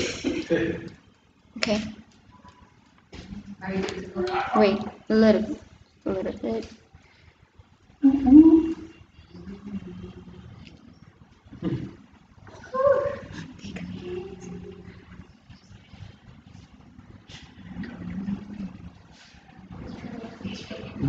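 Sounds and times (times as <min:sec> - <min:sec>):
voices murmuring: 0:03.2 - 0:06.7, 0:08.0 - 0:16.6, 0:17.2 - 0:21.0.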